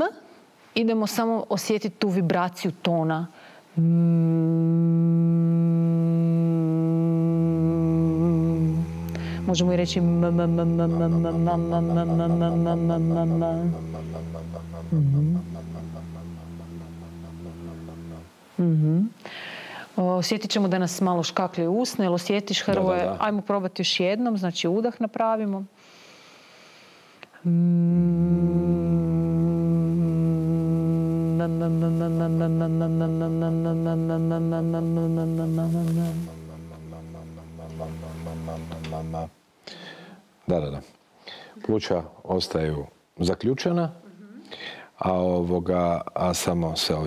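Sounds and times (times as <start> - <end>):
person humming steady tone: 3.8 - 19.3, 27.4 - 39.4.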